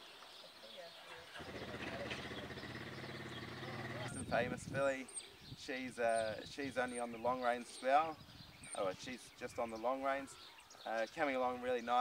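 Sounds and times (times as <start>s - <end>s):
motor humming: 1.4s - 4.1s.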